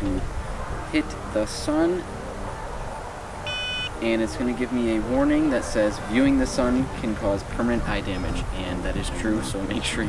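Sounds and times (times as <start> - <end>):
short electronic beep: 3.5 - 4.0.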